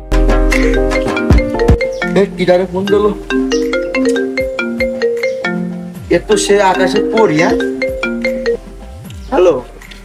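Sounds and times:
marimba-like phone ringtone: 0.5s - 8.7s.

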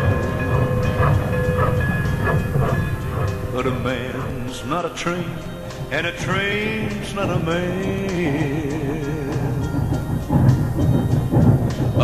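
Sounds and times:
steam locomotive running: 0.0s - 12.0s.

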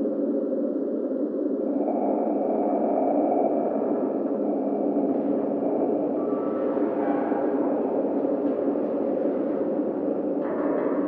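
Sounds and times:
dense low hum: 1.5s - 10.4s.

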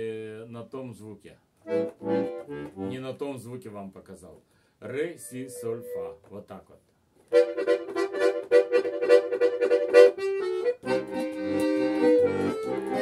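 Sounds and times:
button accordion playing chords: 1.6s - 3.2s, 7.3s - 13.0s.

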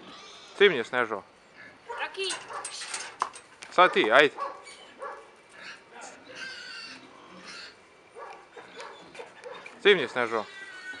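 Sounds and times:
dog whining: 8.2s - 9.7s.

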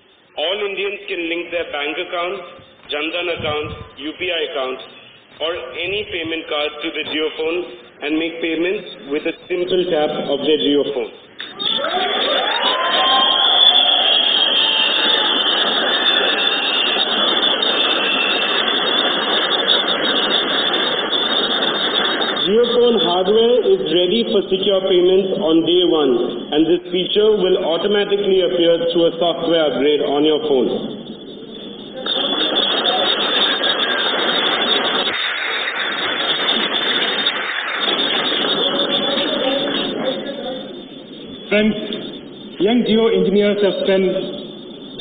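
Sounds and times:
audience applauding: 11.5s - 23.1s, 32.0s - 40.0s.

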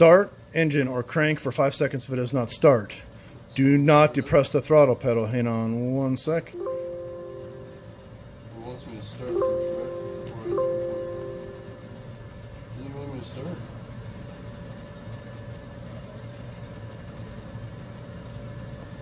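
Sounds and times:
low steady hum: 5.6s - 15.5s
electronic chimes: 6.6s - 8.2s, 9.3s - 12.2s.

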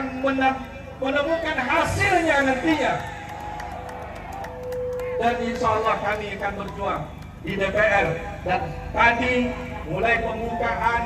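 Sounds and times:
demonstration crowd noise: 0.0s - 11.0s.

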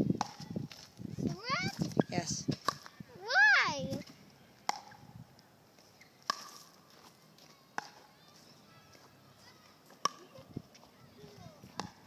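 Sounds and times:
tennis racket striking ball: 2.6s - 2.9s, 4.6s - 5.0s, 6.2s - 6.8s, 7.7s - 8.1s, 10.0s - 10.4s, 11.7s - 12.0s.

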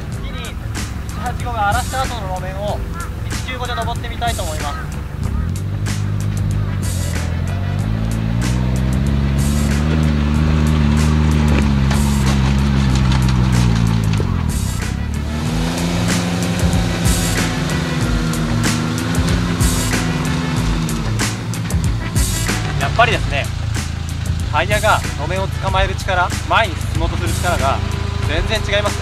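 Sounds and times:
small engine pulling under load: 0.0s - 29.0s.

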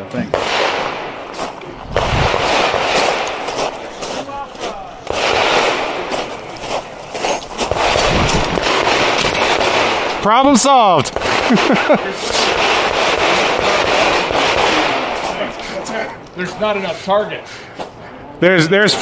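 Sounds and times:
distant pistol shots: 0.3s - 4.0s, 5.0s - 6.5s, 7.6s - 15.5s
crunching on gravel: 1.3s - 11.2s
wind on microphone: 1.6s - 3.1s, 7.5s - 10.0s.

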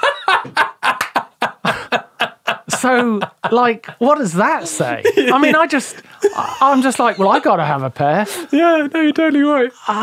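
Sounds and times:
man laughing hard: 0.0s - 4.0s, 4.6s - 7.6s.

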